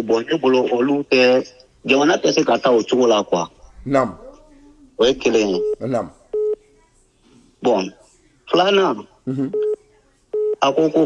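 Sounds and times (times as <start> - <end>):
person speaking: 3.3 - 6.3, 9.3 - 9.7
short electronic beeps: 5.3 - 6.6.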